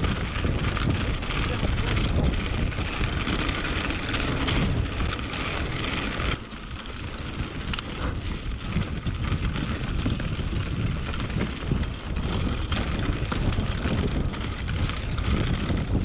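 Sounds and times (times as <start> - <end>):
bike frame rattling: 0.0 - 16.0
bike tyres crunching over gravel: 0.0 - 16.0
wind buffeting microphone: 0.0 - 16.0.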